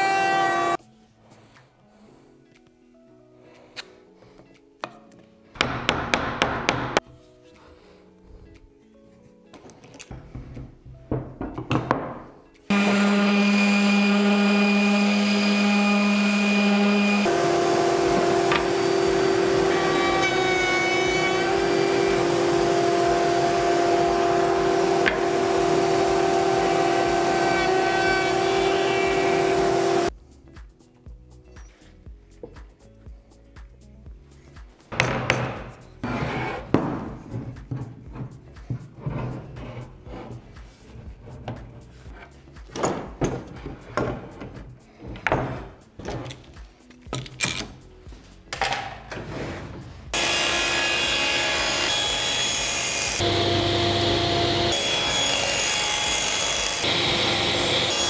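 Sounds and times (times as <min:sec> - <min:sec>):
wood and clamps clattering: 0:09.6 - 0:12.4, 0:35.0 - 0:47.9
woodworking machine motor humming: 0:12.7 - 0:30.1, 0:50.2 - 0:58.0.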